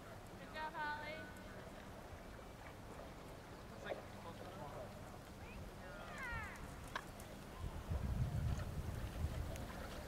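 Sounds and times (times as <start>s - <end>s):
wind rumble on microphone: 5.4s - 10.0s.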